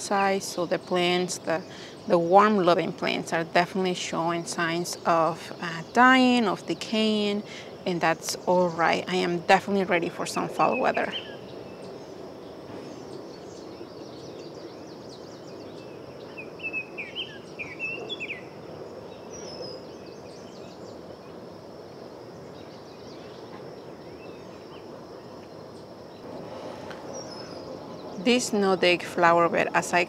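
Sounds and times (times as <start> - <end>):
outdoor background noise: 0.0 - 30.0
small bird chirping: 10.6 - 21.4, 26.9 - 28.6.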